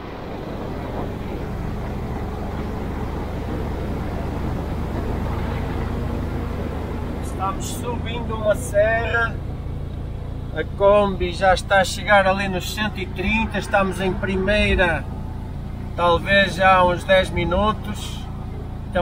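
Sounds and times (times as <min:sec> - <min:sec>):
engine labouring uphill: 0:00.0 - 0:19.0
road and wind noise: 0:00.0 - 0:19.0.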